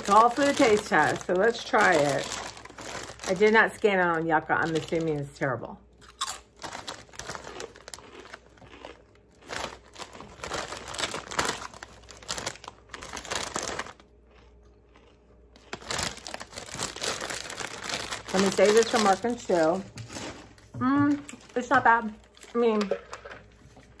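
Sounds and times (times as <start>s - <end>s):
foil bag crinkling: 0.0s - 24.0s.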